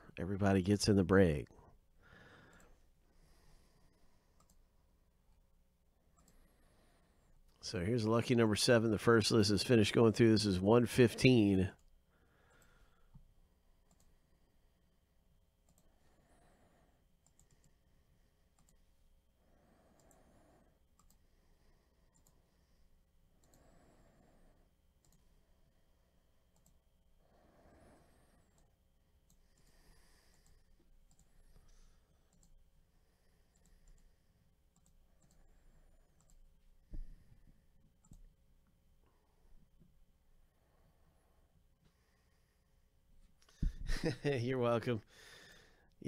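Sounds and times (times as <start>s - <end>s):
faint clicks: 4.4s - 4.6s, 13.8s - 14.2s, 15.6s - 15.9s, 17.2s - 17.8s, 19.9s - 20.3s, 20.9s - 21.2s, 22.1s - 22.4s, 23.4s - 23.7s, 25.0s - 25.3s, 26.5s - 26.8s, 30.3s - 32.6s, 33.5s - 34.1s, 34.7s - 36.5s.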